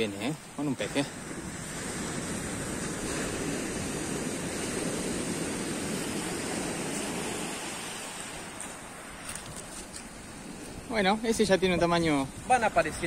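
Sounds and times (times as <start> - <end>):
waves breaking on shingle beach: 0.0 - 13.0.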